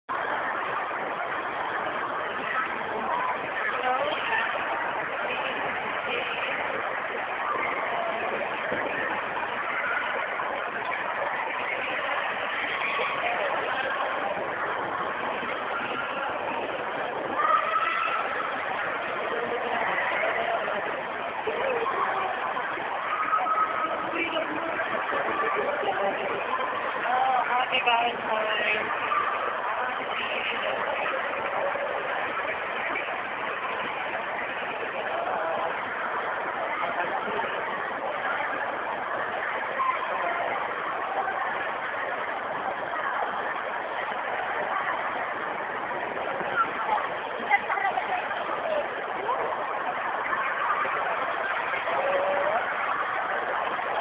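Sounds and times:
faint voices: 0.0s - 54.0s
indoor ice rink din: 0.0s - 54.0s.

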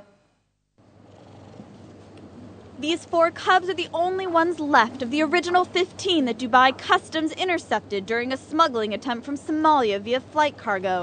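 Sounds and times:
cheetah cubs purring: 1.0s - 2.6s.

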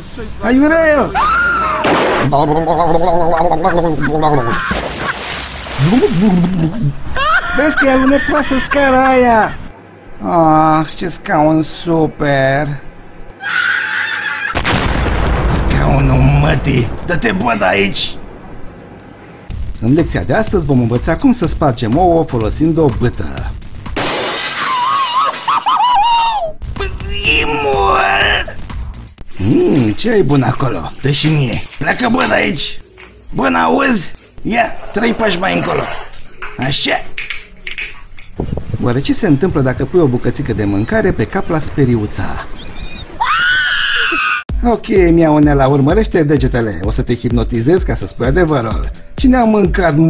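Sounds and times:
man's gargled wavering cry: 2.4s - 4.8s, 5.8s - 8.3s, 24.7s - 26.6s, 43.2s - 44.4s
glass shattering: 24.0s - 25.7s.

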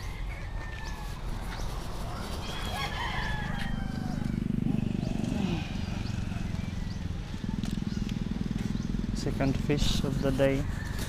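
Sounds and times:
rooster crowing: 0.0s - 1.3s, 2.4s - 4.6s, 10.6s - 11.0s.

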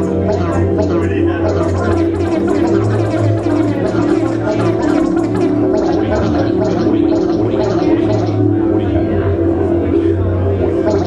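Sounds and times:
short noisy rhythmic strokes: 0.0s - 8.9s
low electronic drone: 0.0s - 11.0s.

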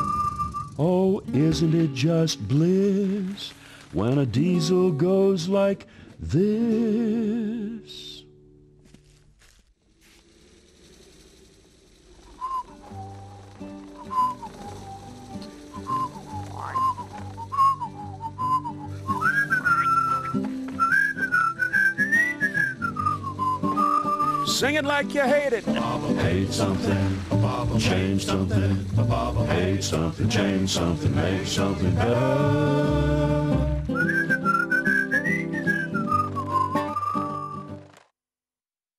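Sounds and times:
person whistling a cheerful tune: 0.0s - 0.9s, 14.0s - 24.6s, 33.8s - 37.7s.

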